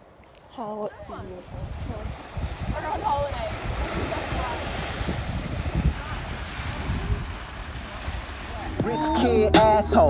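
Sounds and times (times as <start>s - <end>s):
small waves breaking on beach: 0.0s - 9.2s
wind buffeting microphone: 0.6s - 10.0s.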